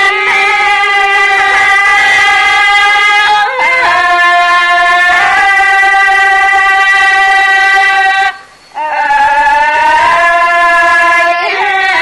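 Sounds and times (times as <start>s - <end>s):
woman singing long notes: 0.0s - 12.0s.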